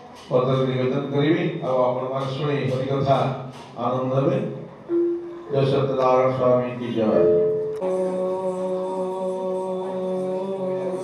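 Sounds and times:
man chanting a held note: 4.3s - 11.0s.

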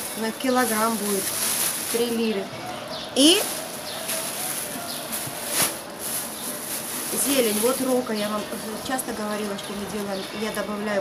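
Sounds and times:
plastic bag rustling and crinkling: 0.0s - 2.6s, 3.2s - 11.0s.

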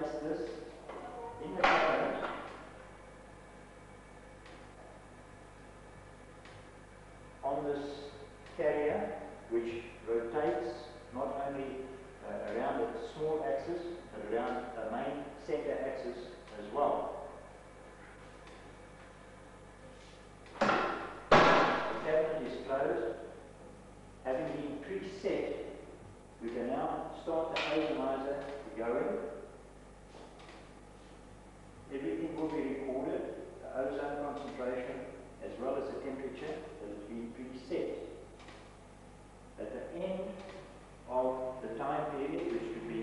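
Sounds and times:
metal door thud: 20.6s - 22.0s.

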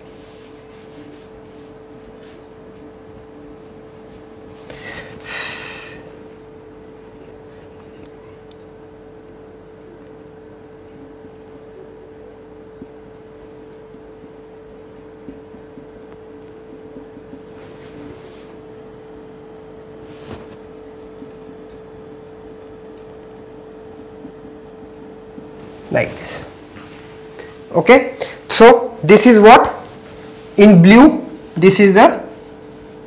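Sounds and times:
low room hum: 0.0s - 33.0s
marker strokes on whiteboard: 0.2s - 2.5s.

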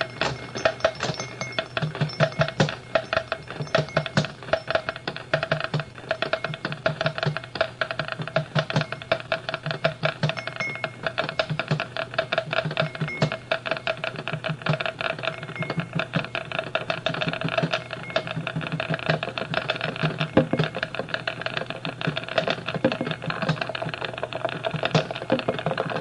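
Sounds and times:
rapid electronic clicks: 0.0s - 26.0s.

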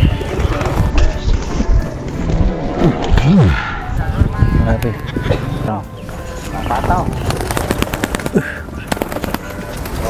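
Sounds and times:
pigeon wings clapping and flapping: 6.7s - 10.0s.

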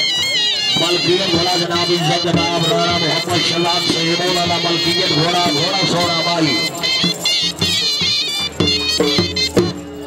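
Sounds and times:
dhol drum beats: 0.0s - 10.0s
high wavering melody: 0.0s - 10.0s.

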